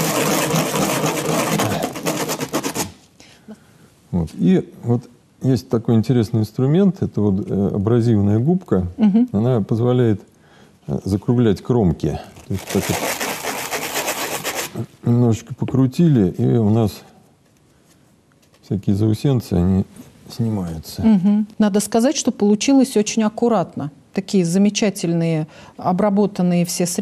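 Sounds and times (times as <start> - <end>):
plastic pipe rasping on sponge: 0.0 - 3.0, 12.7 - 14.8
plastic tube scraping on abrasive sheet: 0.0 - 3.0, 12.5 - 14.8.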